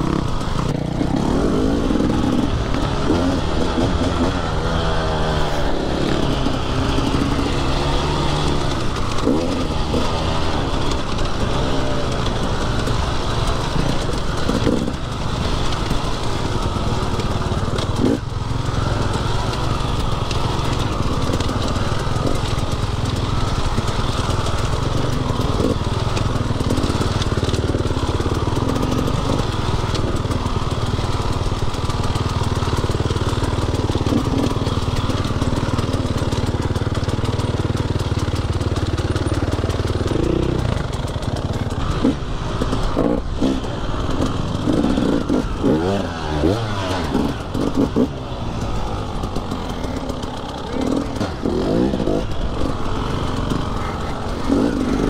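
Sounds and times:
dirt bike engine running: 0:00.0 - 0:55.0.

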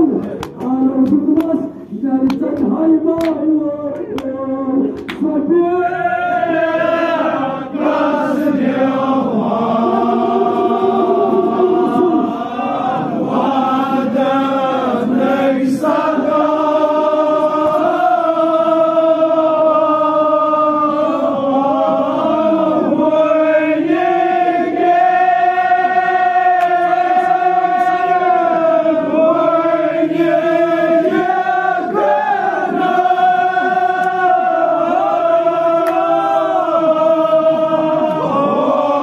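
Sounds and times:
man chanting into microphone: 0:00.0 - 0:06.8.

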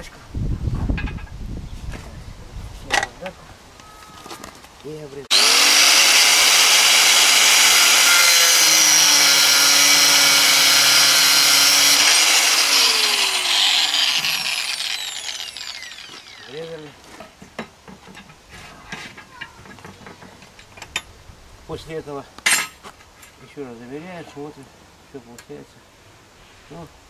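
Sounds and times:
grinder disc spinning down: 0:05.3 - 0:16.9
angle grinder cutting steel: 0:05.3 - 0:17.0.

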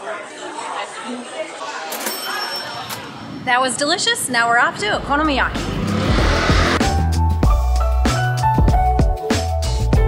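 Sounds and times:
murmur of restaurant chatter: 0:00.0 - 0:03.5
cash register ching: 0:01.9 - 0:03.1.

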